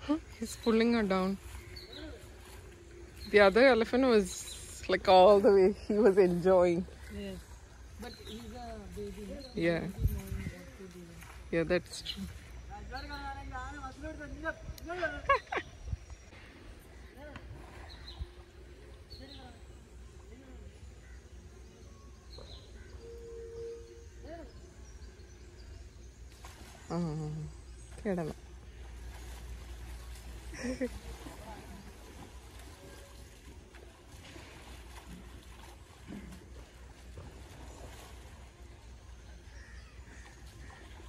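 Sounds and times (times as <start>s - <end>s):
water splashing and sloshing: 0.0s - 21.6s, 24.4s - 41.0s
wind rumble on microphone: 9.1s - 10.9s
bird chirp: 11.7s - 31.2s.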